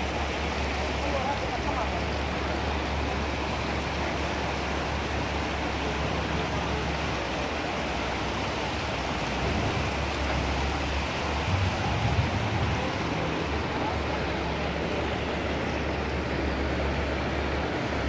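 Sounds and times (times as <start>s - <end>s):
floodwater rushing: 0.0s - 18.0s.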